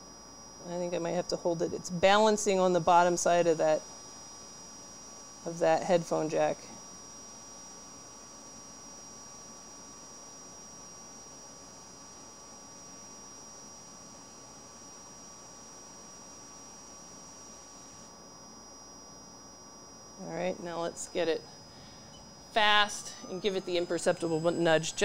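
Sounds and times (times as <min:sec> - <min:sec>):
hot-air blower hiss: 0:00.0 - 0:25.0
mains hum: 0:00.0 - 0:25.0
high whine: 0:19.4 - 0:25.0.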